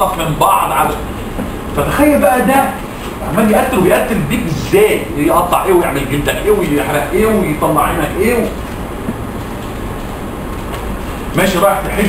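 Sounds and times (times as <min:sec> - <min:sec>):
rushing room noise with rumble: 0:00.0 - 0:12.0.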